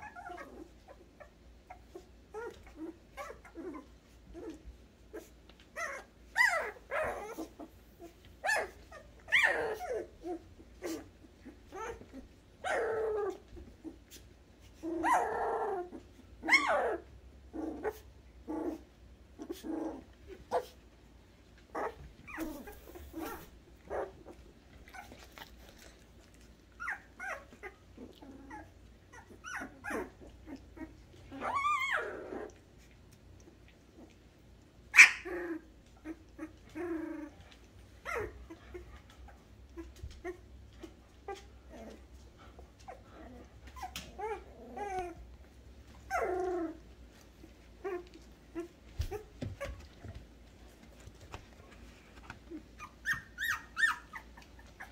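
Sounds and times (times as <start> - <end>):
puppies whimpering and yelping: 0.0 - 54.9.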